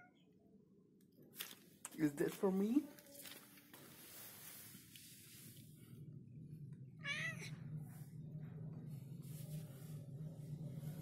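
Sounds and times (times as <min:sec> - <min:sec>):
cat meowing: 0:07.0 - 0:07.6.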